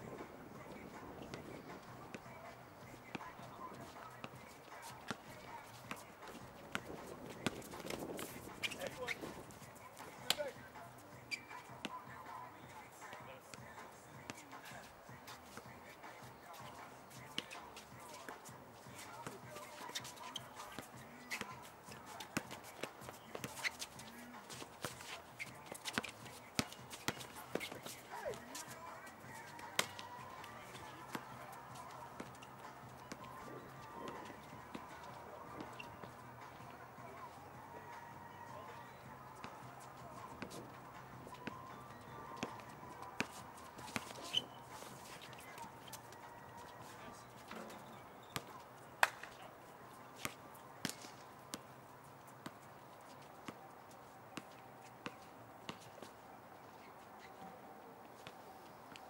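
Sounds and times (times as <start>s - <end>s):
sneakers squeaking on court: 0.8s - 12.0s, 14.3s - 36.5s, 43.2s - 48.6s.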